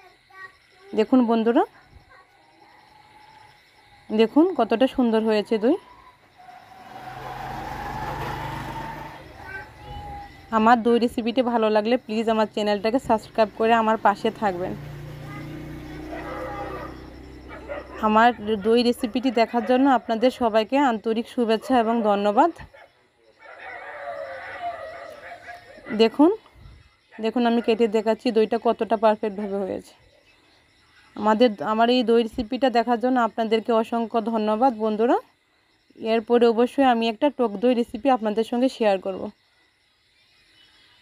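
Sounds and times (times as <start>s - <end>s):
animal's drawn-out wavering call: 2.1s - 3.8s, 5.5s - 10.6s, 15.6s - 20.3s, 21.9s - 26.2s
motor vehicle passing by: 6.3s - 10.5s, 13.2s - 18.7s.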